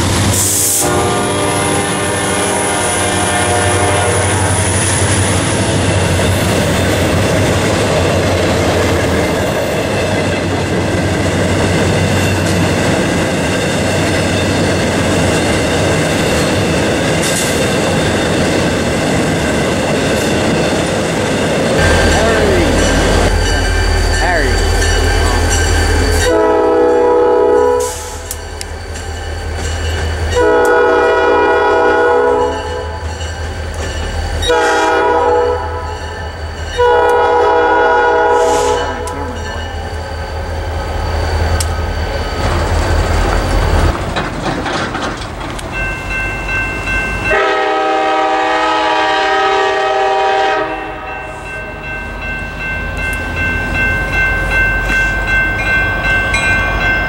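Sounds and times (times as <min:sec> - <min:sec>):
diesel locomotive engine rumble: 0:00.0 - 0:57.0
freight train wheels on rails: 0:00.0 - 0:57.0
train horn blasts: 0:00.7 - 0:04.8, 0:21.8 - 0:23.4, 0:26.2 - 0:28.3, 0:30.3 - 0:33.0, 0:34.4 - 0:36.0, 0:36.8 - 0:39.5, 0:47.2 - 0:51.4.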